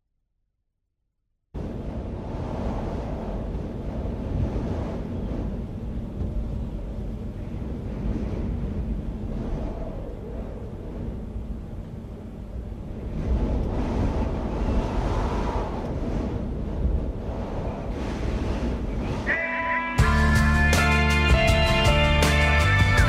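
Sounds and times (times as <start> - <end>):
wind and surf wash: 1.6 - 19.8
instrumental music: 19.3 - 23.0.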